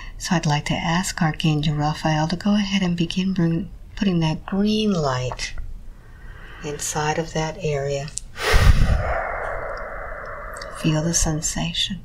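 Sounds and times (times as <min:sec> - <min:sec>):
person breathing out: 0:06.0 - 0:06.9, 0:08.3 - 0:10.9.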